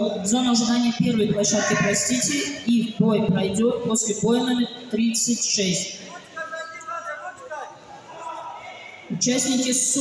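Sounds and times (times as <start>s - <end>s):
loudspeaker announcements: 0.0s - 10.0s
sports hall noise: 0.0s - 10.0s.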